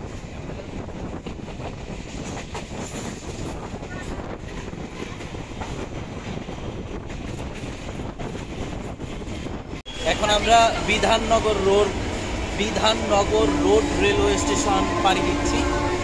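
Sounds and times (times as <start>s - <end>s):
train wheels on rails: 0.0s - 16.0s.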